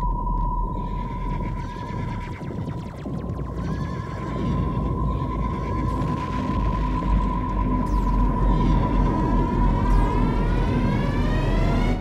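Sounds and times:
heavy low rumble: 0:00.0 - 0:12.0
rising synthesized whine: 0:00.0 - 0:12.0.

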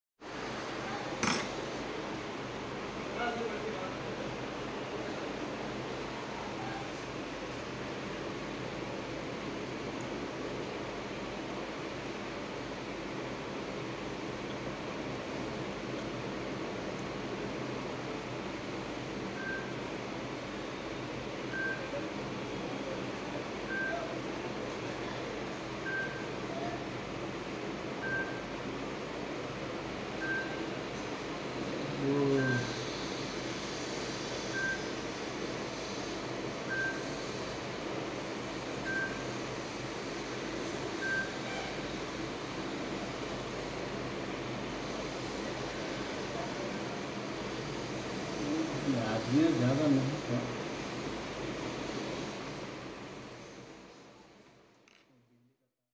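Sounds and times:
steady hiss: 0:30.8 - 0:41.0, 0:41.6 - 0:54.4.

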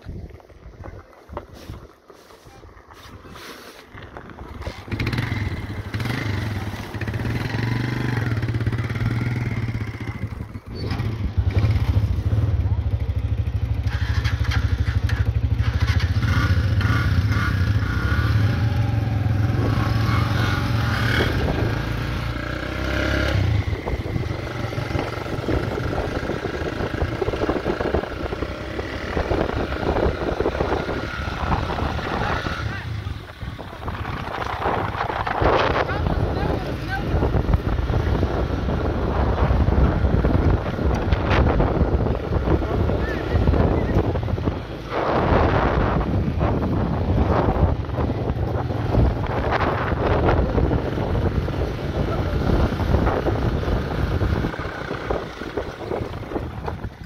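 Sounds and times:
wind: 0:00.0 - 0:57.0
voices: 0:31.3 - 0:37.6, 0:42.4 - 0:45.9, 0:51.9 - 0:53.2.

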